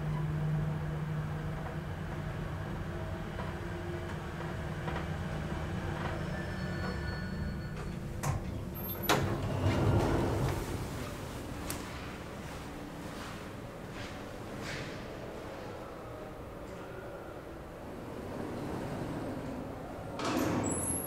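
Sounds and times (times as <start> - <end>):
elevator car humming: 0.0 - 21.0
elevator doors sliding open: 3.4 - 12.4, 17.3 - 21.0.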